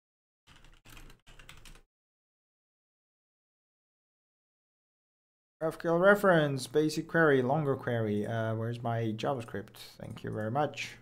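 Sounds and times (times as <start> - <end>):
computer keyboard typing: 0.5 - 1.8.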